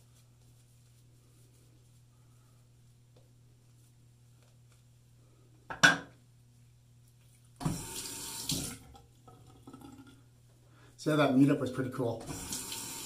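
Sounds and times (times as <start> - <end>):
tap water splashing into sink: 7.6 - 9.8.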